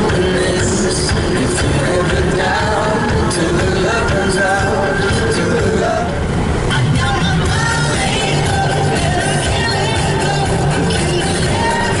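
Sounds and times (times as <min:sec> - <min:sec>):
car road and engine noise: 0:00.0 - 0:12.0
music with singing: 0:00.0 - 0:12.0.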